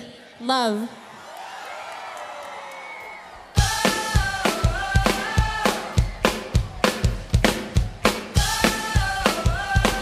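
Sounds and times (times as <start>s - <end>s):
crowd cheering and screaming: 0.8s - 7.4s.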